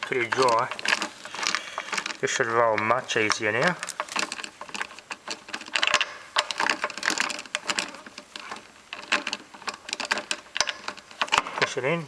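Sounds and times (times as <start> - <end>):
hands working on mower parts: 0.0 - 12.0.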